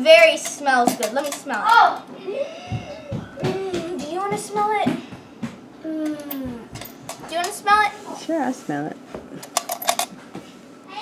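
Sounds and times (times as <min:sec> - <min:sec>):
children talking and exclaiming: 0:00.0 - 0:08.2.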